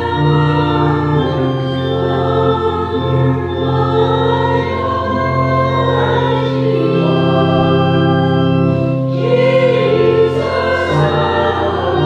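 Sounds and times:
organ: 0.0 - 12.0
voices singing a hymn: 0.0 - 12.0.

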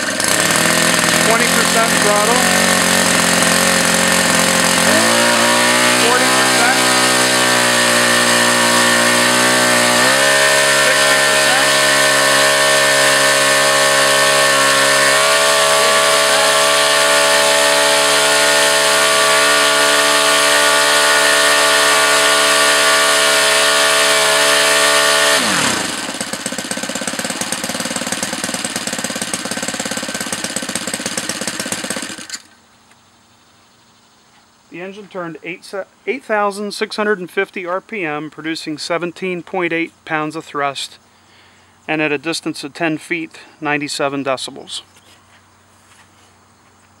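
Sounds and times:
model aircraft engine droning: 0.0 - 32.6.

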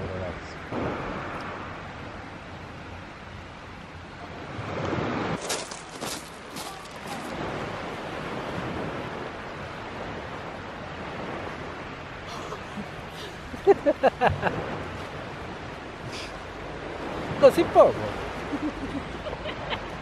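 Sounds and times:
waves washing onto pebble beach: 4.4 - 19.8.

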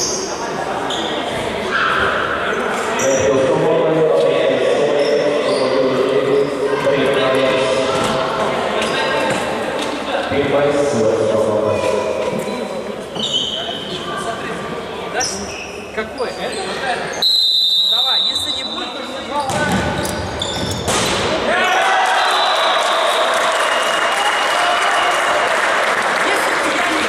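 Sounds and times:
referee whistle blast: 17.2 - 18.9
crowd shouting and cheering: 21.2 - 27.0.

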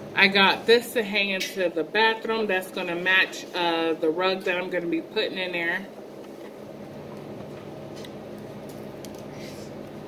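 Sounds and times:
steady low background hum: 0.0 - 10.0.

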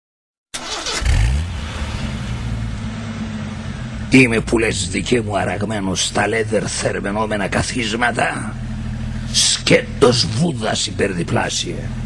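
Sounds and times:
car engine starting and idling: 0.6 - 12.0.

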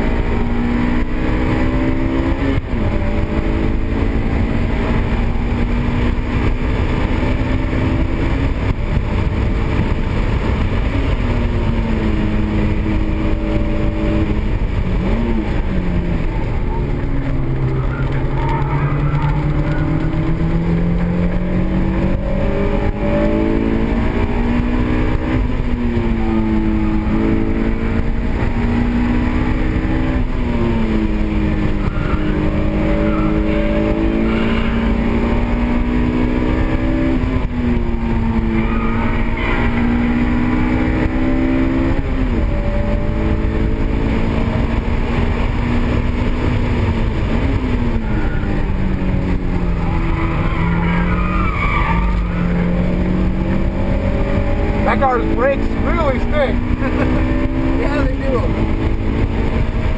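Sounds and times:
car engine revving: 0.0 - 59.9
tyre squeal: 16.3 - 20.4, 31.7 - 35.0, 38.5 - 40.0, 49.6 - 53.0.

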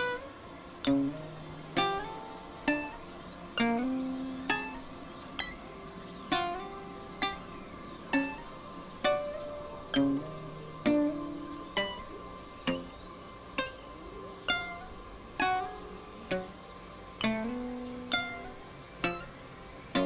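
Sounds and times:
plucked synthesizer notes: 0.0 - 20.0.

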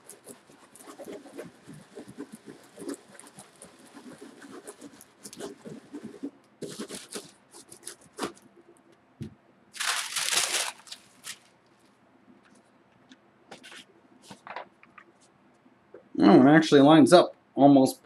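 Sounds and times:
baren scrubbing over paper: 0.0 - 8.4
paper rustling: 2.8 - 8.4, 9.8 - 11.9, 13.5 - 15.2.

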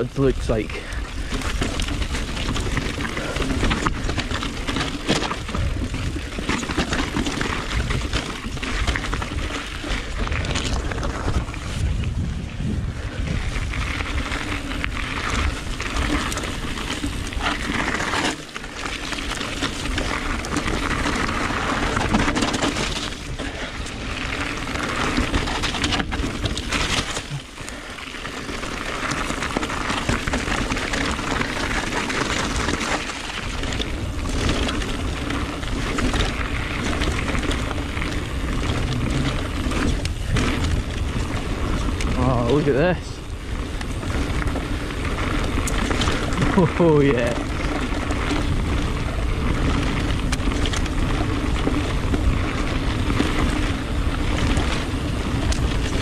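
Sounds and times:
tyres rolling over gravel: 0.0 - 56.0
wind on microphone: 8.8 - 17.9, 33.5 - 46.6.

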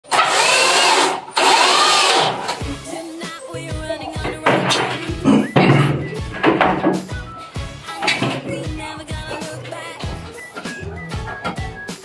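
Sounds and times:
cordless drill driving screws: 0.1 - 2.6.

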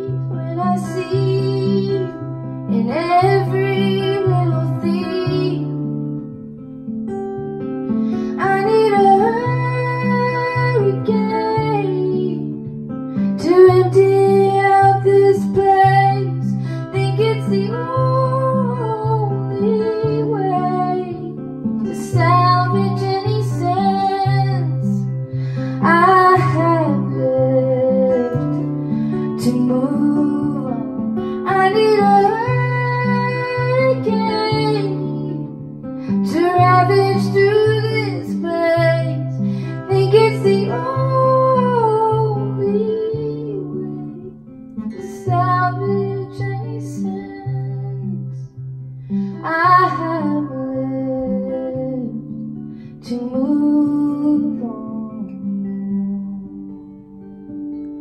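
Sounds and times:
woman singing: 0.0 - 6.3, 7.9 - 57.8
acoustic guitar: 0.0 - 58.0.

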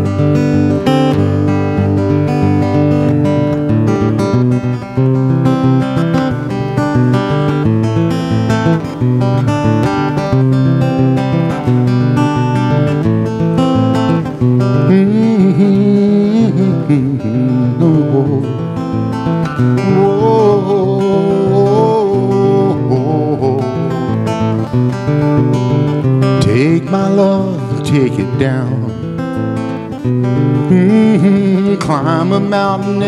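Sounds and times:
acoustic guitar playing: 0.0 - 33.0.

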